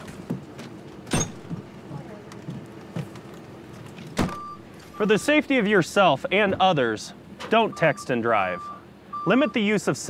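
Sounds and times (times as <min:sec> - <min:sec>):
emergency vehicles idling: 0:00.0 - 0:10.0
short electronic beep: 0:04.4 - 0:05.4.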